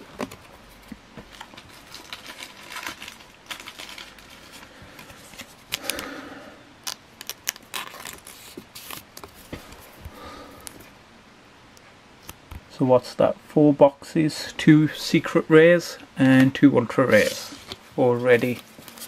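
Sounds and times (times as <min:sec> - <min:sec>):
plastic sleeve crinkling: 0:00.1 - 0:06.1, 0:06.8 - 0:10.0, 0:17.1 - 0:19.0.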